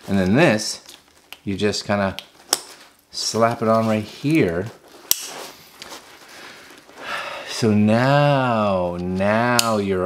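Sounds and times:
quiet rustling: 0.0s - 7.1s
sharp snap: 5.1s - 5.4s.

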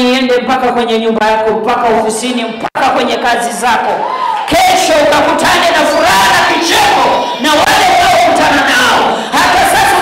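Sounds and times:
woman shouting into microphone: 3.5s - 10.0s.

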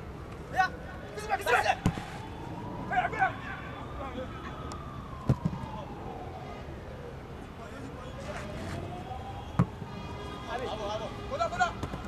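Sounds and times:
football kicked thud: 9.6s - 9.8s.

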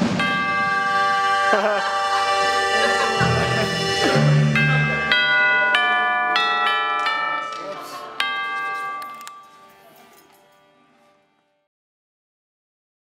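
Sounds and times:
tubular bells struck: 0.0s - 9.9s.

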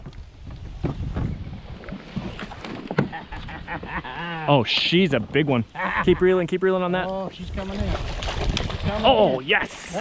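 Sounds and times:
wind: 0.0s - 10.0s
rushing water: 4.4s - 10.0s
fish splashing at the surface: 7.8s - 9.2s.

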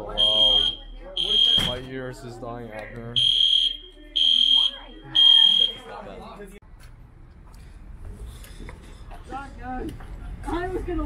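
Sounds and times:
fire alarm beeping: 0.0s - 1.9s, 3.2s - 5.9s.

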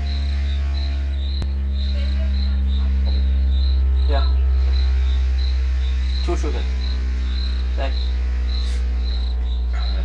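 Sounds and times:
cricket chirping: 0.0s - 10.0s
low bass test tone: 0.0s - 10.0s.

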